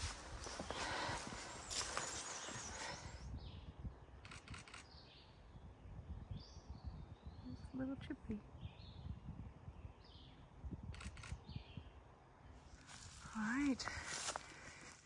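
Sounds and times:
footsteps on forest trail: 0.0 - 3.2, 12.8 - 15.0
leaves rustling: 0.0 - 3.2, 12.6 - 15.0.

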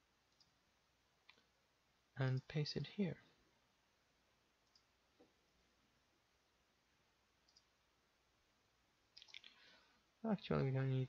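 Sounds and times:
faint clicks: 0.3 - 0.6, 4.6 - 5.3, 7.4 - 7.7.

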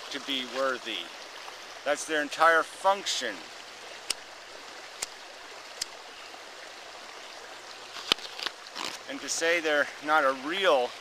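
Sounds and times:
stream running: 0.0 - 11.0.

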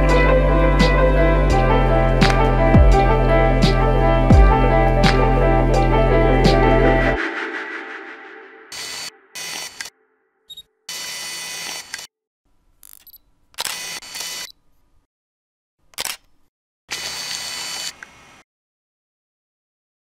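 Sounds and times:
camera mechanism whirring: 10.9 - 12.1, 12.8 - 14.6, 16.9 - 18.4
camera shutter clicks: 12.8 - 14.5, 16.0 - 16.3, 16.9 - 18.1.

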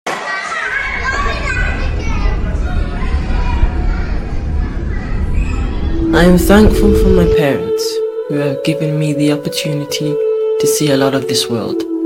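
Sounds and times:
children shouting and calling: 0.1 - 6.7
low rumble: 0.7 - 8.2.

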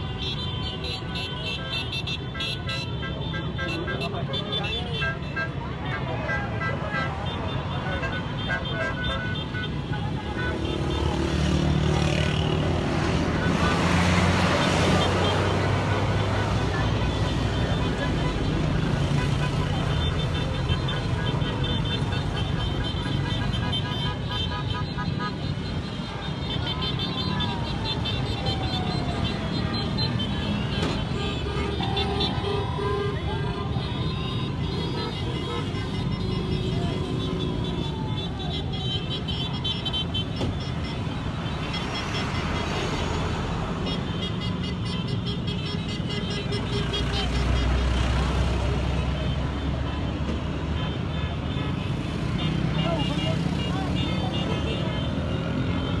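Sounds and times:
horns tooting: 0.0 - 56.0
people's voices: 1.4 - 39.6, 52.4 - 56.0
motorcycles riding past: 9.9 - 39.6.

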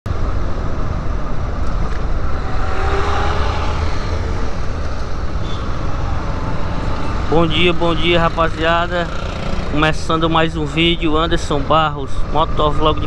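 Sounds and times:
wind rush on microphone: 0.2 - 7.4.

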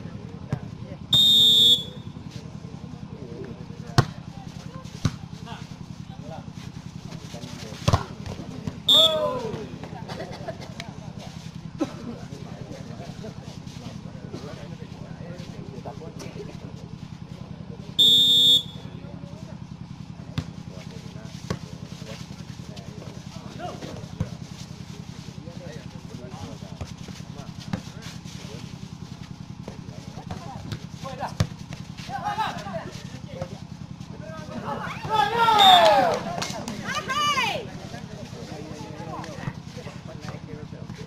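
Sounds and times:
referee's whistle: 1.2 - 2.1, 8.9 - 9.5, 18.0 - 18.9, 35.5 - 36.0
spectators shouting: 8.9 - 9.7, 34.8 - 37.6.

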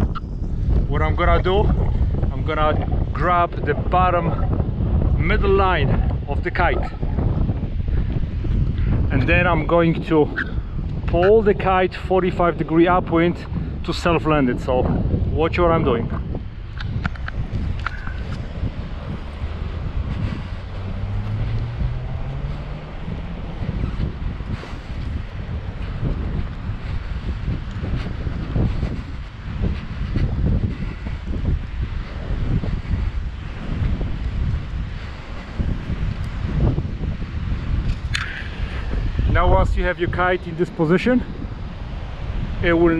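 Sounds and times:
wind buffeting microphone: 0.0 - 42.9.

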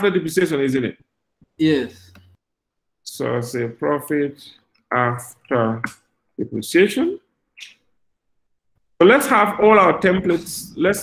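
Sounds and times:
man speaking: 0.0 - 2.2, 3.0 - 7.8, 9.0 - 11.0.

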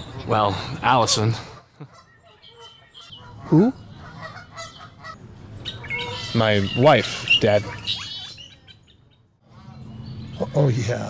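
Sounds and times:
geese honking: 0.2 - 8.8.

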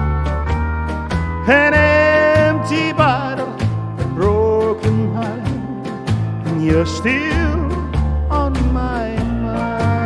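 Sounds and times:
backing track with steady beat: 0.0 - 10.0
man singing country song: 1.4 - 10.0.

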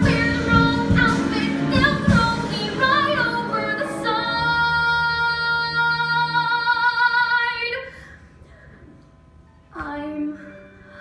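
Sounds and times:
woman singing: 0.0 - 7.9, 9.7 - 11.0.

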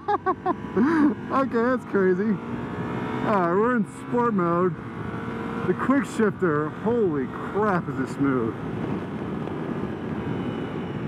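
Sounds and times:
motorcycle engine cruising: 0.0 - 11.0.

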